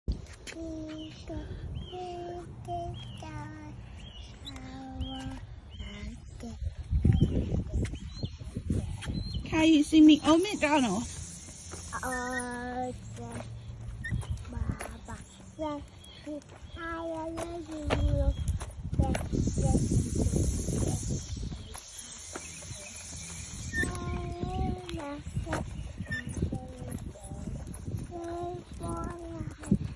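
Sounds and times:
tricycle wheels rumbling on concrete: 0:00.1 - 0:29.9
toddler singing drawn-out notes: 0:00.5 - 0:07.9, 0:11.7 - 0:15.9, 0:16.8 - 0:29.9
high bird chirps: 0:02.9 - 0:18.6, 0:19.2 - 0:27.0.

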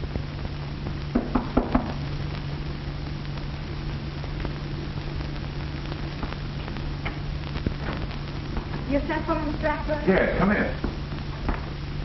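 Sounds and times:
film soundtrack hum and hiss: 0:00.0 - 0:12.0
knocks on a wooden door: 0:01.1 - 0:02.0.

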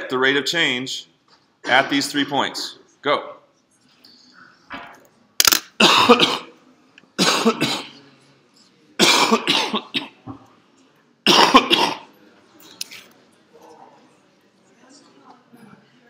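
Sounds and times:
person coughing: 0:05.8 - 0:06.5, 0:07.2 - 0:08.0, 0:09.0 - 0:10.2, 0:11.3 - 0:12.1.

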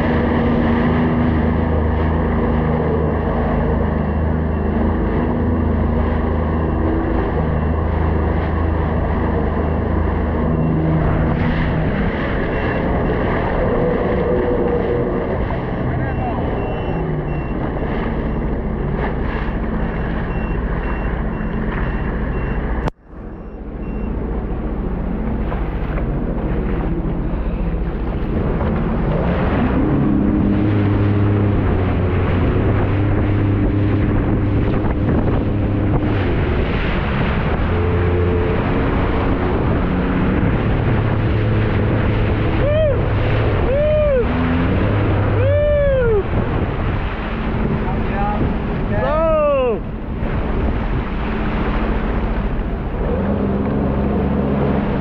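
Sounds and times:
jet ski engine: 0:00.0 - 0:55.0
water rushing: 0:00.0 - 0:55.0
wind: 0:00.0 - 0:55.0.

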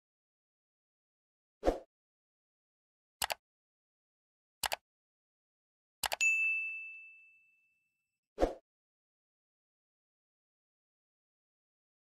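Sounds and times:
bright bell ding: 0:06.2 - 0:07.8.

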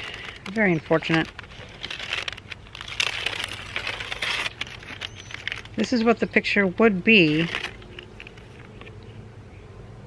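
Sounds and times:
paper rustling and crinkling: 0:00.0 - 0:09.0.

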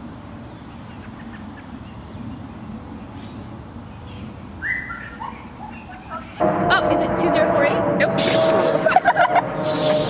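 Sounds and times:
hose spray hissing: 0:08.2 - 0:10.0.

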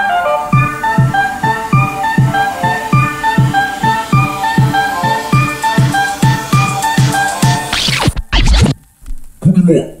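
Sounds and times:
background music: 0:00.0 - 0:08.8
record scratching: 0:00.5 - 0:08.9.

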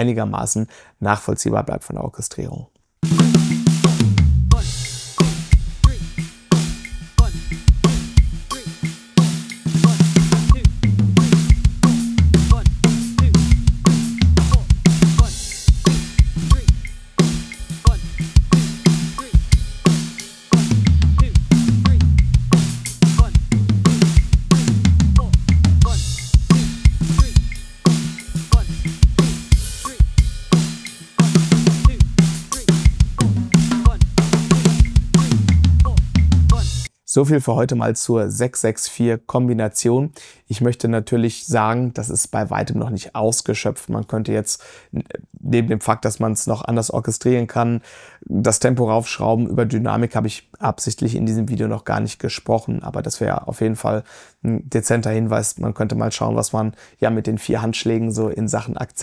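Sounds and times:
acoustic drum kit fills: 0:03.0 - 0:36.9.

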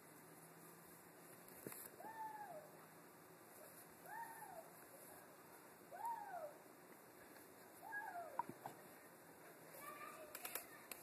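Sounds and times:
animal calling: 0:02.0 - 0:02.8.

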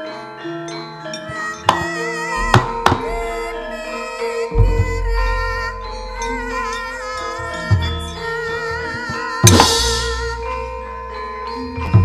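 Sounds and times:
gamelan music: 0:00.0 - 0:12.0
sharp wooden knocks: 0:02.5 - 0:03.1.

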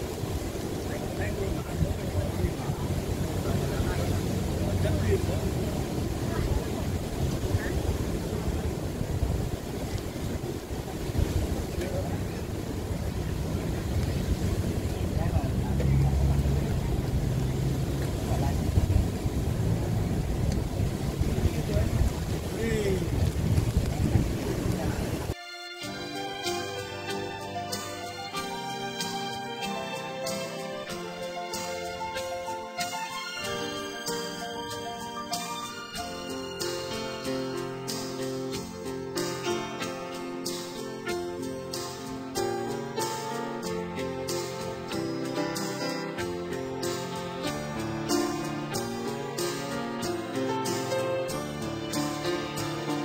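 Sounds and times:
wind rumble on microphone: 0:00.0 - 0:25.4
surf washing onto beach: 0:00.0 - 0:53.0
faint distant voices: 0:00.1 - 0:25.4.

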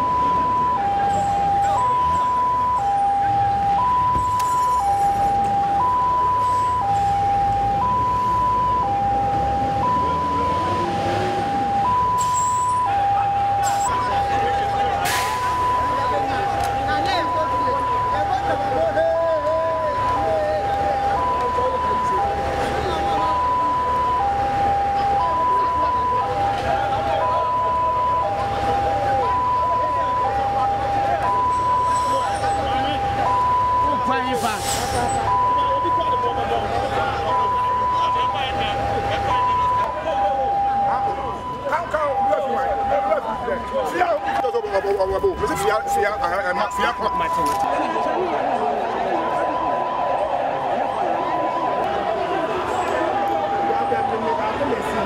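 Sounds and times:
crowd voices: 0:00.0 - 0:55.0
police siren two-tone wail: 0:00.0 - 0:55.0
street noise: 0:00.0 - 0:55.0.

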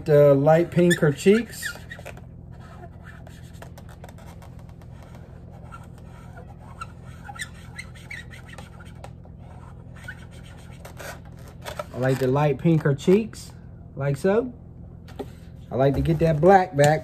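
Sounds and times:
steady low hum: 0:00.0 - 0:17.0
marker squeaking on balloon: 0:00.5 - 0:12.3.

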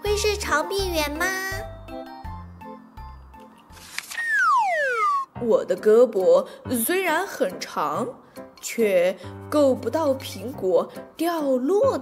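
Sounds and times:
soft children's music: 0:00.0 - 0:12.0
cartoon whistle sliding down: 0:04.1 - 0:05.4.

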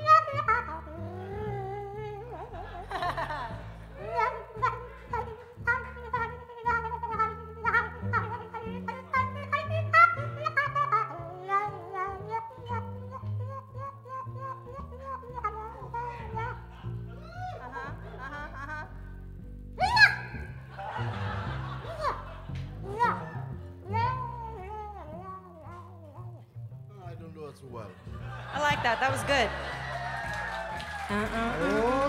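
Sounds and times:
harmonica playing jazz melody: 0:04.0 - 0:17.0
upright bass and band: 0:15.3 - 0:24.8, 0:26.6 - 0:32.0.

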